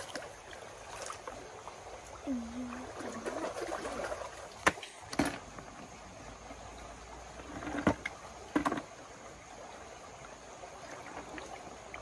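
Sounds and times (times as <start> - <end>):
stream water: 0.0 - 12.0.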